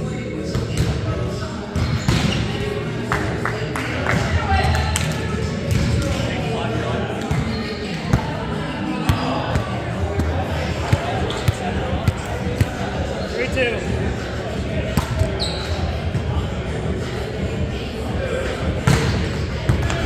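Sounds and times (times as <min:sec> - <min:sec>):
indistinct voices: 0:00.0 - 0:20.0.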